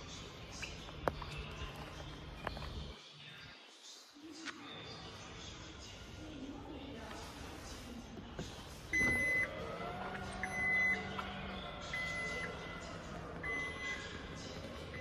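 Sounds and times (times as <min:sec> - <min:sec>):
high warning beep: 0:08.9 - 0:09.6, 0:10.4 - 0:11.2, 0:11.8 - 0:12.7, 0:13.4 - 0:14.1.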